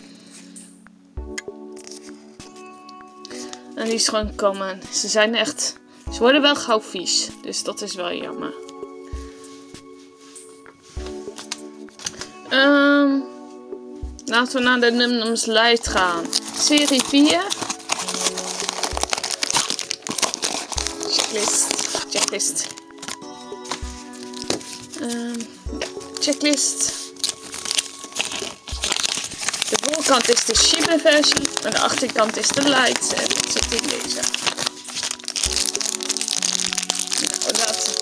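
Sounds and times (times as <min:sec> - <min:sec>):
cardboard packaging rustling: 0:01.8 - 0:02.7, 0:10.4 - 0:12.4, 0:14.3 - 0:38.0
paper and plastic bag crinkling: 0:01.8 - 0:02.7, 0:03.3 - 0:04.2, 0:11.0 - 0:12.4, 0:14.3 - 0:38.0.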